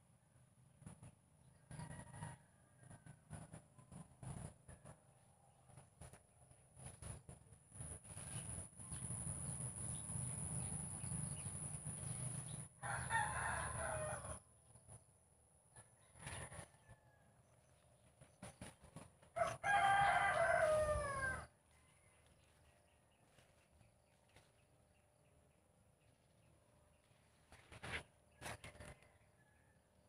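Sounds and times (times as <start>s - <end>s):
rooster crowing: 1.7s - 3.2s, 12.8s - 14.4s, 15.8s - 17.4s, 19.4s - 22.5s.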